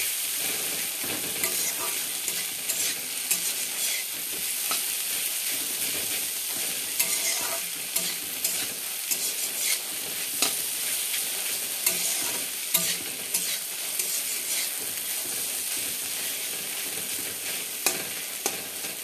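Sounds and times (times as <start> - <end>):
fish sizzling in a pan: 0.0 - 19.0
spatula scraping and knocking pan: 0.6 - 4.9, 5.5 - 10.6, 11.8 - 19.0.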